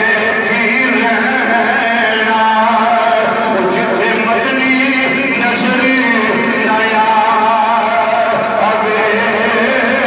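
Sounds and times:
man chanting into microphone: 0.0s - 10.0s.

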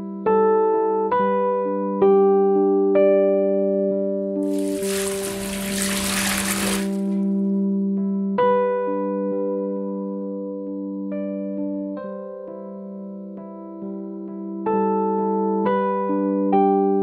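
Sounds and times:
water pouring into metal bowl: 4.5s - 7.2s.

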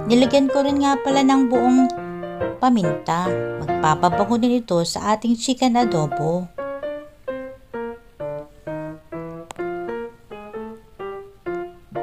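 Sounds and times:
piano single notes: 0.0s - 4.6s, 5.8s - 12.0s.

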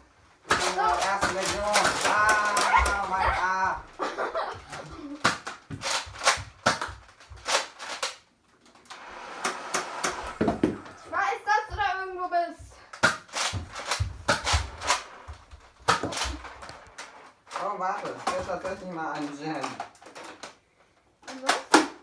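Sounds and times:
toy blasters clicking and snapping: 0.5s - 3.3s, 4.7s - 10.7s, 12.9s - 20.6s, 21.2s - 22.0s.

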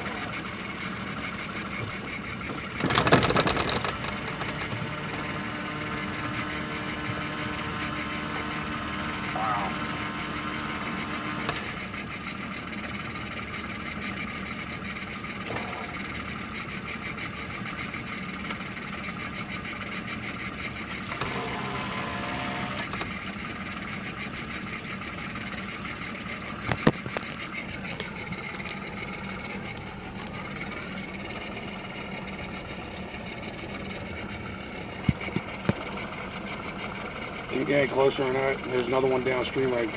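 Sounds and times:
boat motor running: 0.0s - 39.9s.

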